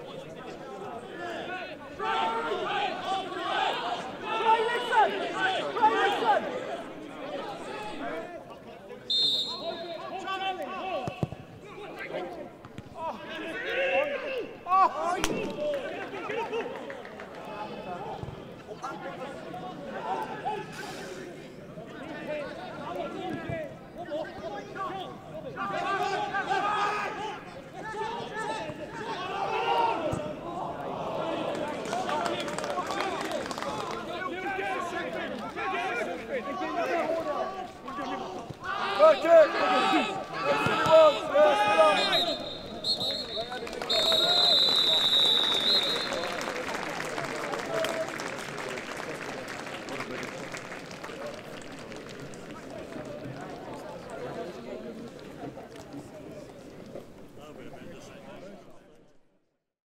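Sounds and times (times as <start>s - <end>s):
crowd shouting and chattering: 0.0s - 59.6s.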